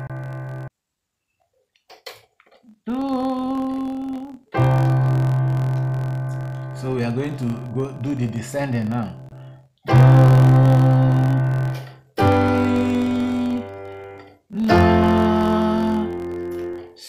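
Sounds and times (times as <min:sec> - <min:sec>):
keyboard piano chords: 0:00.0 - 0:00.7, 0:04.5 - 0:17.0.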